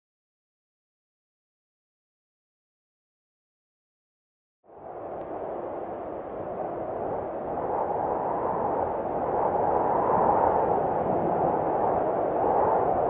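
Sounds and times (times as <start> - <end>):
muffled steady rushing noise: 4.7 - 13.0.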